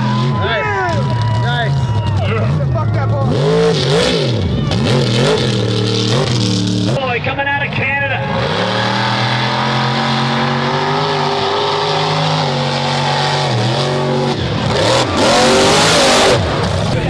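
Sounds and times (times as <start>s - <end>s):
truck engine at high revs: 0.0s - 17.0s.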